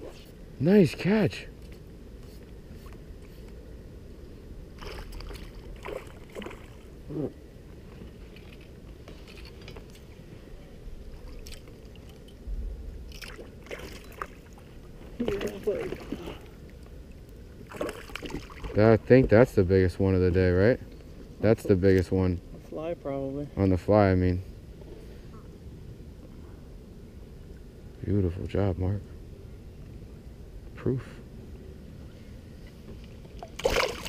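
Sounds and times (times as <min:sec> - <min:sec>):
low steady rumble: 0:00.0 - 0:34.0.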